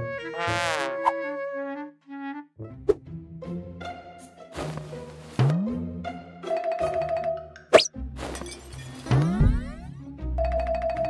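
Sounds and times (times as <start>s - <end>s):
background music: 0.0s - 11.0s.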